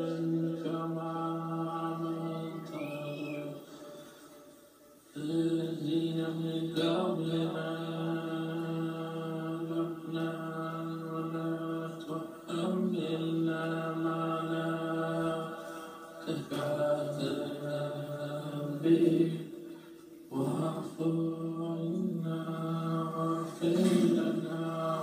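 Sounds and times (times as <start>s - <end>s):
chant-like drone music: 0.0s - 19.7s, 20.3s - 25.0s.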